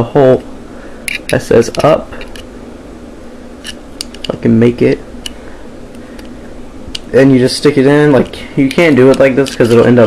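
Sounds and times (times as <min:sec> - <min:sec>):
steady hum and hiss: 0:00.0 - 0:10.0.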